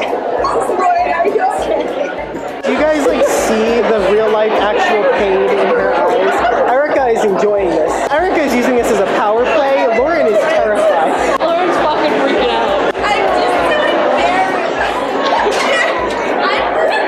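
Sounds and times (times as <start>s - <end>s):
voices talking and laughing: 0.0s - 17.0s.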